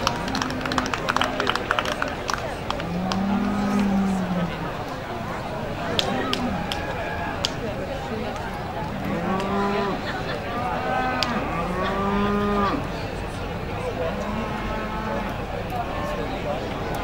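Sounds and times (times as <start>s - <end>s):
cattle mooing: 2.8s - 4.7s, 9.0s - 12.9s, 14.1s - 15.3s.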